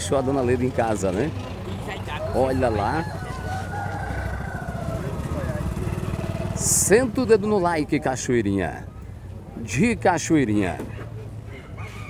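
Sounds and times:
vehicle engine running: 0.0s - 9.6s.

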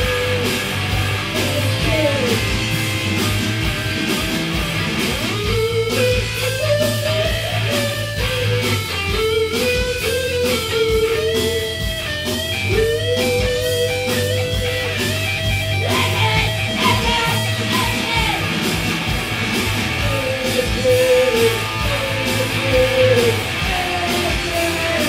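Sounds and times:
bass guitar: 0.0s - 25.0s
drums: 0.0s - 25.0s
electric guitar lead with bends: 0.0s - 25.0s.

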